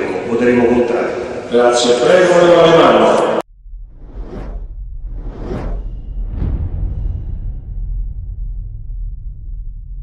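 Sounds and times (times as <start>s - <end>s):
low rumble: 3.4s - 10.0s
whooshes: 3.8s - 8.4s.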